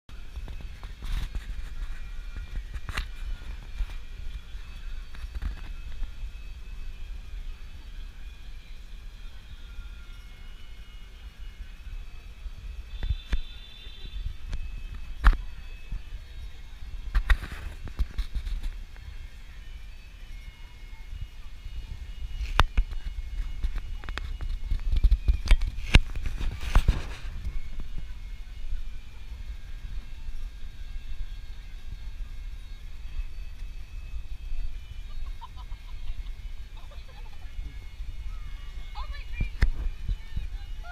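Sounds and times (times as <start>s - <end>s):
wind rumble on microphone: 0.1s - 40.9s.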